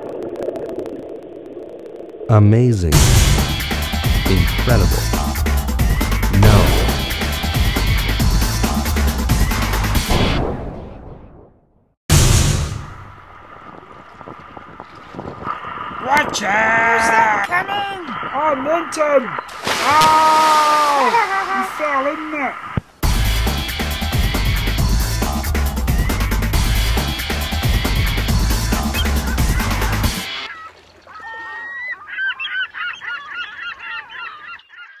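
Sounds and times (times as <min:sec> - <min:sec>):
music: 0:02.9 - 0:10.1, 0:23.0 - 0:30.4
wind on microphone: 0:13.5 - 0:18.4
sea water rushing: 0:13.5 - 0:23.0.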